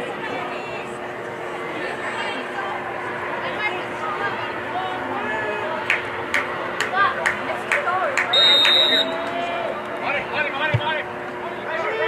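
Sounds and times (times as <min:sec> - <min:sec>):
steady hum: 0:00.0 - 0:12.0
voices talking and calling: 0:00.0 - 0:12.0.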